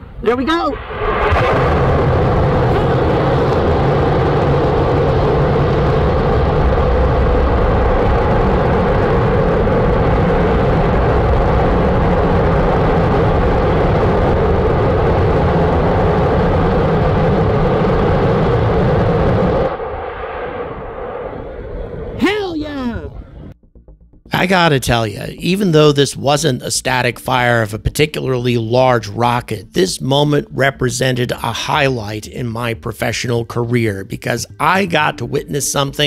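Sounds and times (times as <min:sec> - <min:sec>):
distant rocket engines rumbling: 0:00.2 - 0:23.6
short voice-like cry: 0:22.2 - 0:23.3.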